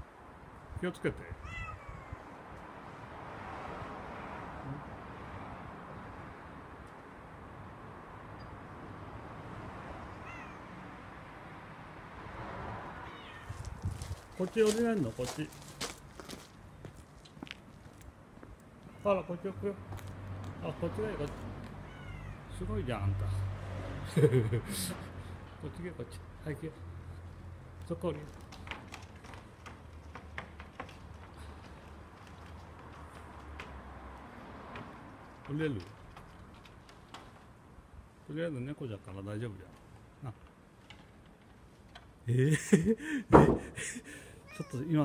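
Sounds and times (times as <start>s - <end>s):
kitten meowing: 1.4s - 2.3s, 10.1s - 10.6s, 13.0s - 13.7s, 21.8s - 22.4s, 44.4s - 44.9s.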